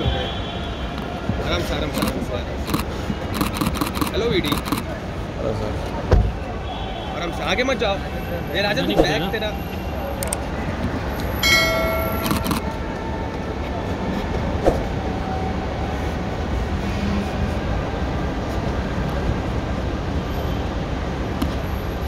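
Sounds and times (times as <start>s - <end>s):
road traffic rumble: 0.0s - 22.0s
bright chime-like tone: 11.4s - 12.5s.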